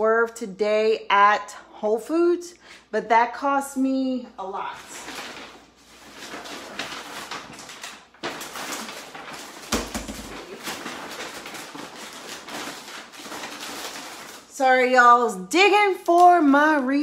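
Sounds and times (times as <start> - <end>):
crackly rustling: 4.7 - 15.0.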